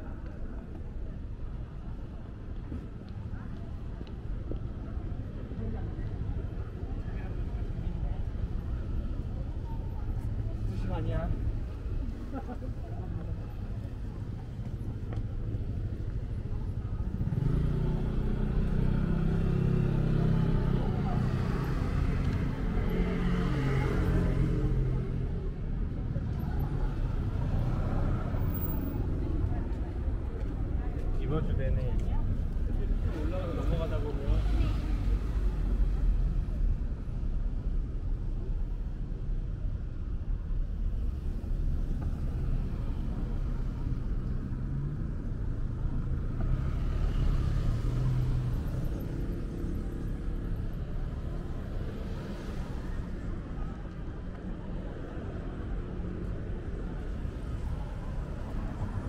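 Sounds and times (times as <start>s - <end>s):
passers-by talking: 0.0s - 59.0s
traffic rumble: 0.0s - 59.0s.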